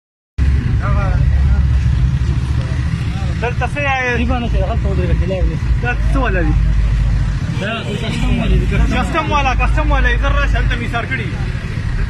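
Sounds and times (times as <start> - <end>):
loud low rumble: 0.4 - 12.0.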